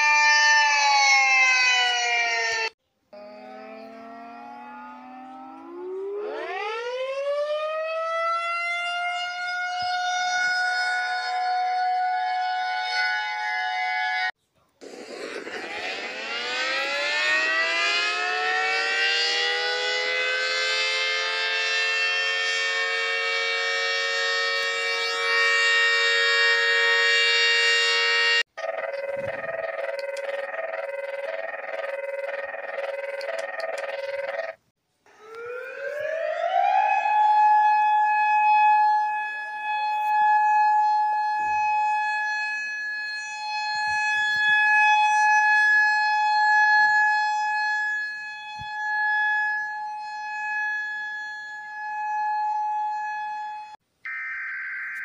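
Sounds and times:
siren single steady tone: 0:00.0 - 0:14.3, 0:15.5 - 0:55.0
multi-tone siren winding up: 0:00.0 - 0:55.0
warbling alarm: 0:00.0 - 0:55.0.

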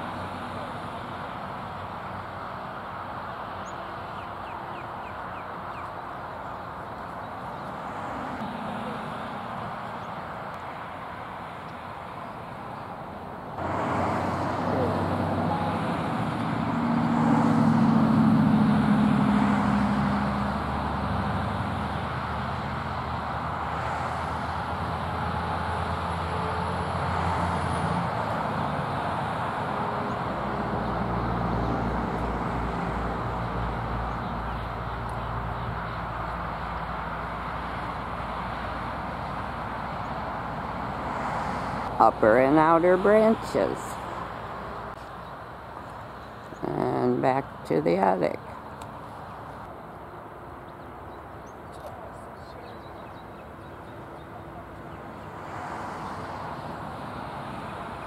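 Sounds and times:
traffic engine rumble: 0:00.0 - 0:58.0.

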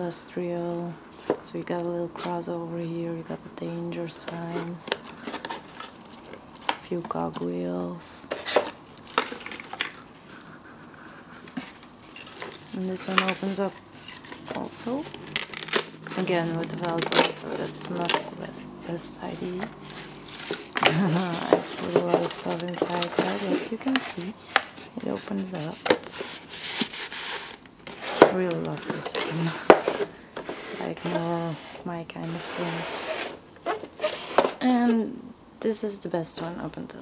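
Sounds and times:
paper rustling: 0:11.3 - 0:18.5, 0:19.4 - 0:34.6.

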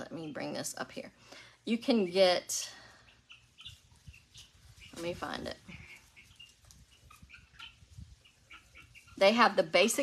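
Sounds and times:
faint bird chirps: 0:02.0 - 0:09.3.

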